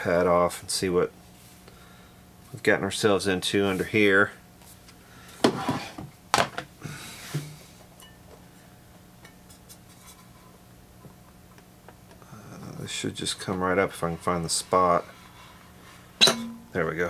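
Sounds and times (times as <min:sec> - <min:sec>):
knocks and clinks of turntable parts: 0:16.2 - 0:16.7.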